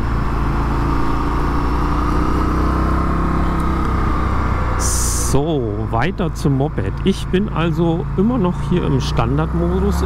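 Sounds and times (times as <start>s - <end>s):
motorcycle engine running: 0.0s - 10.0s
wind and road noise: 0.0s - 10.0s.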